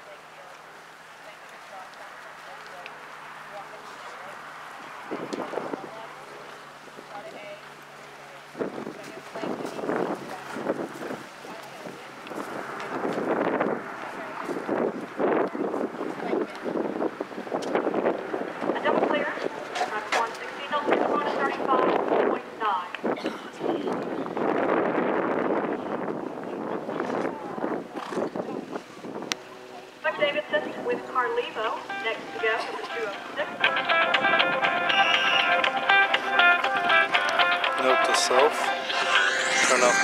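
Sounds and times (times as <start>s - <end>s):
wind buffeting microphone: 4.6s - 7.5s, 8.4s - 35.8s
faint talking: 37.8s - 40.0s.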